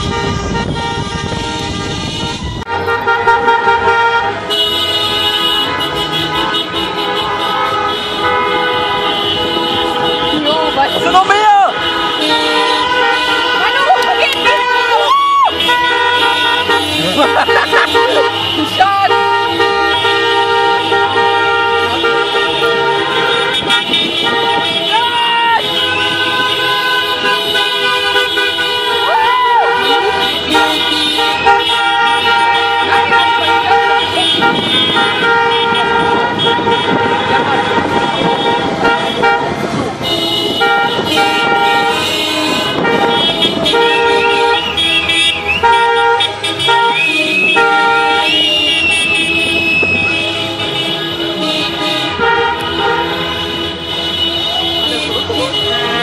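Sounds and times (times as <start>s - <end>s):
car horns honking: 0.0s - 56.0s
people shouting: 10.3s - 20.0s, 24.1s - 26.3s, 28.8s - 36.3s.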